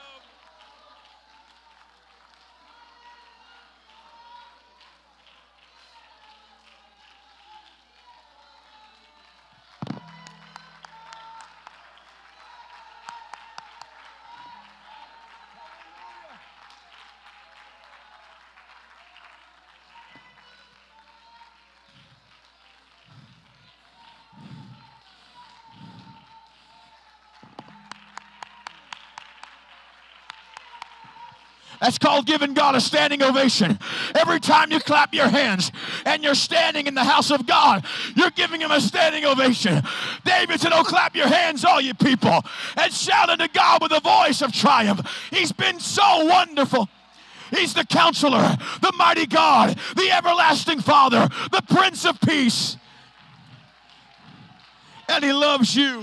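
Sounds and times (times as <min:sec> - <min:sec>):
hand claps: 0:04.8 - 0:20.4, 0:21.2 - 0:31.6.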